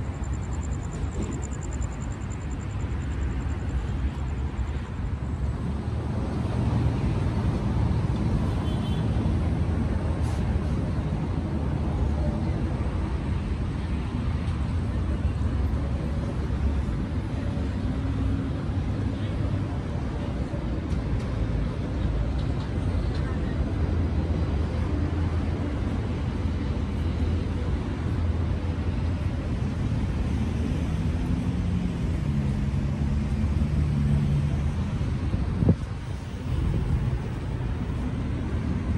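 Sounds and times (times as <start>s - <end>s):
low city ambience rumble: 0.0s - 38.9s.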